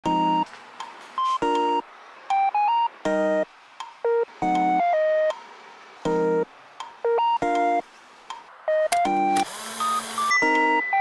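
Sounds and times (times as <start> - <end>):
keyboard synth tune: 0.0 - 0.5, 1.2 - 5.4, 6.0 - 7.9, 8.6 - 11.0.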